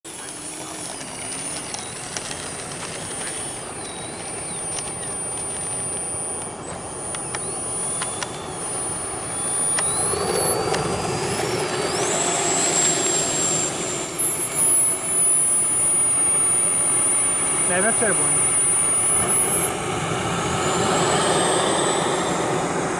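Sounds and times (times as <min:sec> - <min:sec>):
model jet ducted fans whining: 0:00.1 - 0:22.9.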